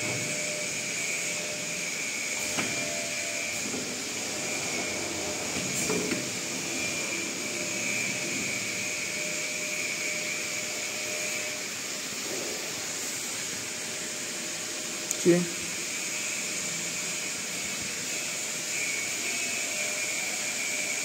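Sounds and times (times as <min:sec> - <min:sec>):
high machine whine: 0:00.0 - 0:21.0
screen-printing machine hissing: 0:00.0 - 0:21.0.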